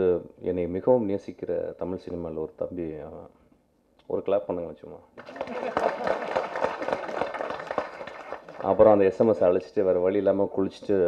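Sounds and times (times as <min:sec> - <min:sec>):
audience applauding: 0:05.2 - 0:09.2.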